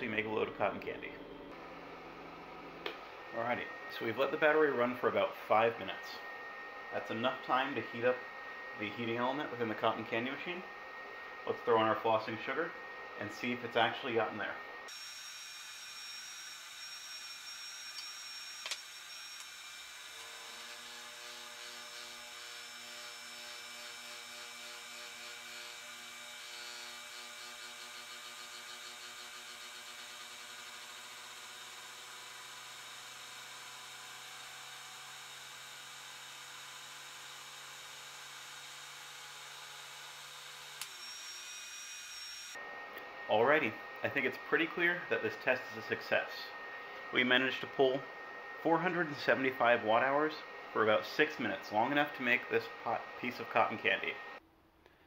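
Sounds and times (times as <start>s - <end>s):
low hum with overtones: 0.0s - 14.9s
cotton candy machine whirring: 0.6s - 54.4s.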